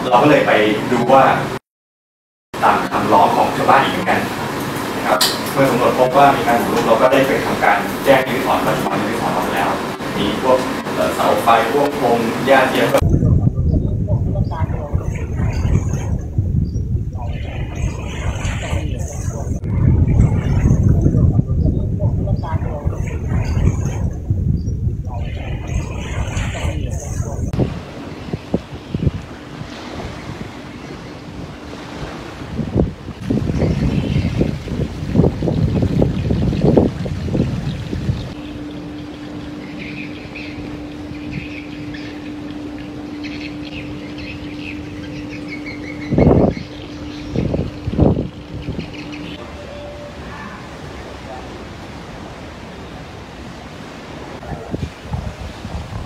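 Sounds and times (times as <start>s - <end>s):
steady low hum: 2.6s - 56.0s
wind rumble on microphone: 2.6s - 56.0s
indistinct voices: 5.0s - 16.4s, 17.1s - 24.3s, 25.0s - 27.6s.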